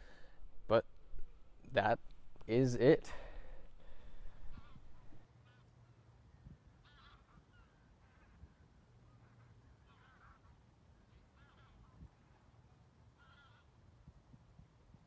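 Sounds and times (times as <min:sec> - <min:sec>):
low steady background noise: 0:00.0 - 0:15.0
geese honking: 0:04.4 - 0:06.1, 0:06.8 - 0:13.8.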